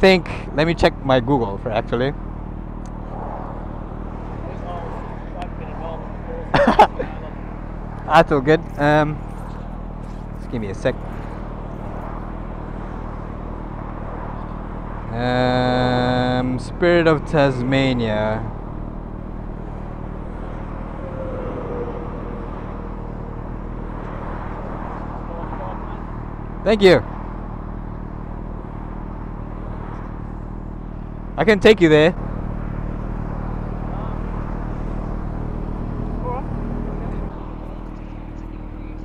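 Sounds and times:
freeway traffic rushing past: 0.0 - 39.0
motorcycle engine idling: 17.9 - 31.5, 32.2 - 39.0.

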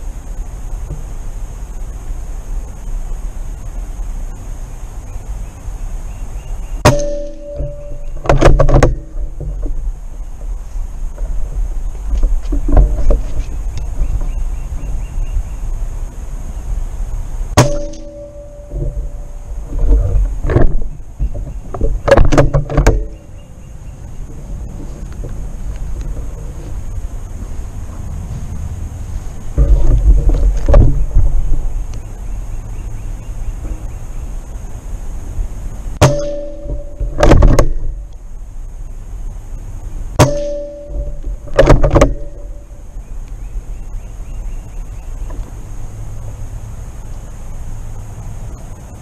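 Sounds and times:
wind rumble on microphone: 0.0 - 49.0
ringing metallic tone: 6.8 - 9.2, 17.6 - 19.8, 36.0 - 38.0, 40.2 - 42.8
sharp clicks and knocks: 6.8 - 14.9, 17.6 - 23.3, 29.5 - 32.0, 36.0 - 38.2, 40.2 - 42.6.

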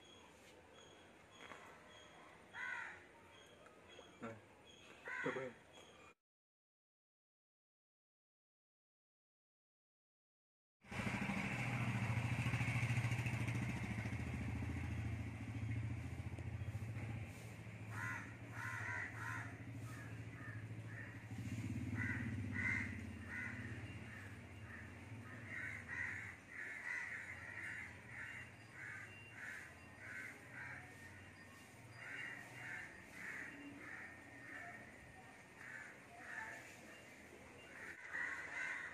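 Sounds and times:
crows cawing: 2.5 - 3.0, 5.0 - 5.6, 17.9 - 31.2, 31.9 - 36.8, 37.6 - 38.9.

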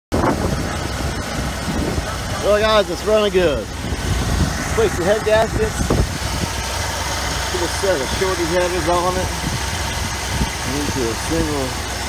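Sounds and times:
truck engine idling: 0.1 - 12.0.

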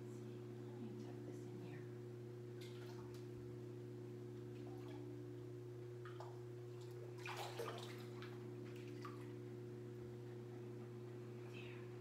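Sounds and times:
steady low hum: 0.0 - 12.0
water sloshing and splashing: 2.6 - 3.4, 4.4 - 5.3, 6.0 - 9.5.

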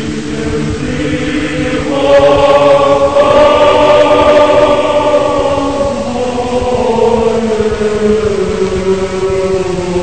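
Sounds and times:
choir singing sustained chord: 0.0 - 10.0.

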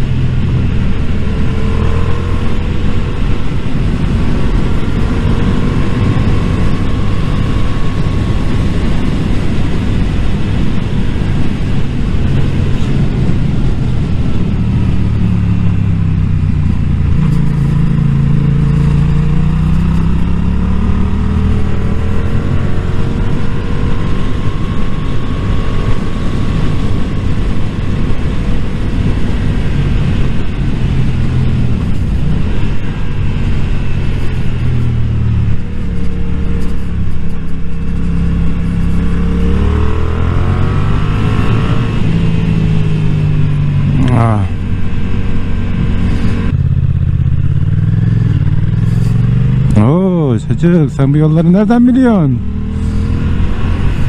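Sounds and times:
motorcycle engine revving: 0.0 - 54.0
wind rush on microphone: 0.0 - 54.0.

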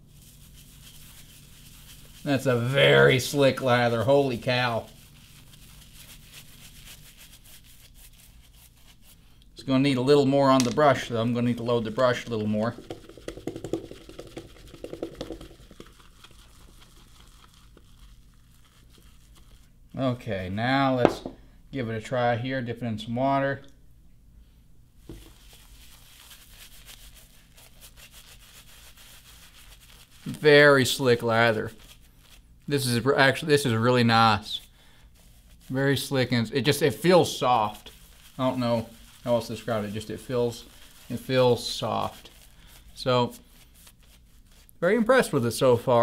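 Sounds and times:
shaving brush swishing lather: 0.0 - 20.2, 25.0 - 46.0.

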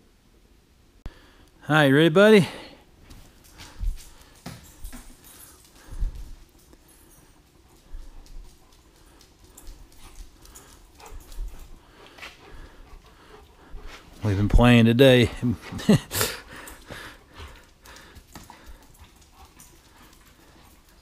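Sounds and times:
dog footfalls on concrete: 3.0 - 6.8, 16.7 - 21.0.

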